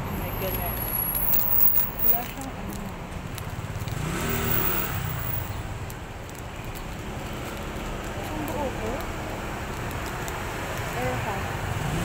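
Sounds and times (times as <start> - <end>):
low traffic hum: 0.0 - 12.0
engine revving as it passes: 3.8 - 5.5, 11.4 - 12.0.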